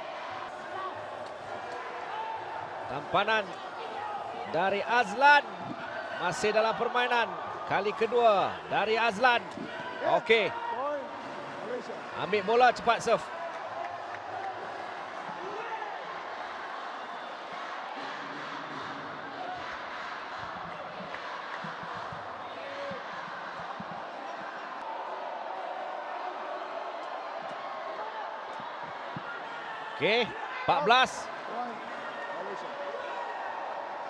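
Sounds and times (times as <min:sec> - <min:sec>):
crowd din of voices: 0:00.0 - 0:34.0.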